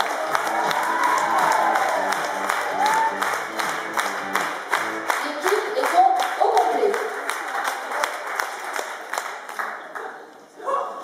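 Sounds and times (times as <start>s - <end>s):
music playing: 0.0s - 7.5s
audience applauding and cheering: 0.0s - 10.4s.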